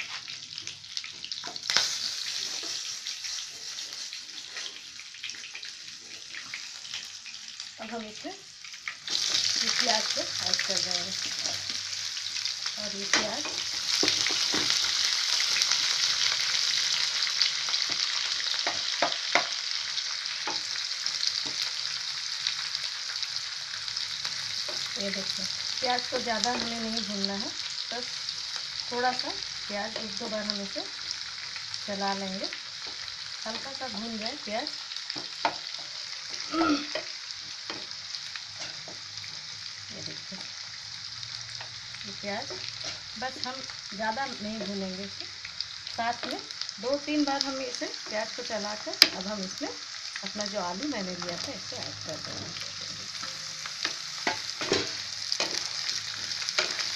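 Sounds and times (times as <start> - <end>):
onions sizzling in hot oil: 0.0 - 56.9.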